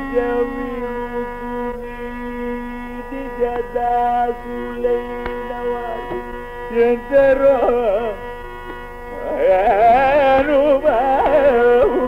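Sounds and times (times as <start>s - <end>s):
tambura drone: 0.0s - 12.0s.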